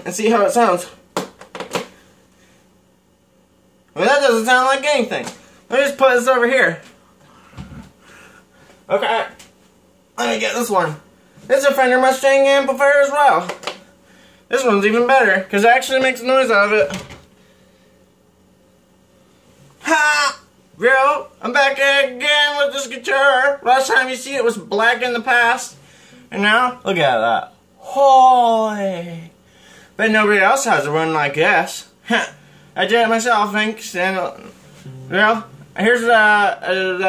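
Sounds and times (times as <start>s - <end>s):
faint amp hum: 0.0s - 37.0s
person speaking: 19.8s - 29.4s, 30.0s - 37.0s.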